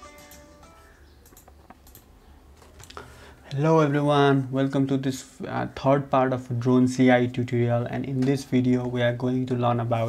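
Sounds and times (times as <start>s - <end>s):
keyboard keys clicking: 1.2s - 2.1s.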